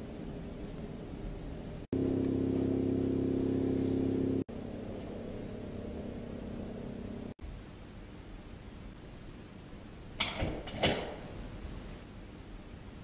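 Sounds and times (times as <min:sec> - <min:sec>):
steady low hum: 0:00.0 - 0:10.2
drone of low tones: 0:01.9 - 0:07.3.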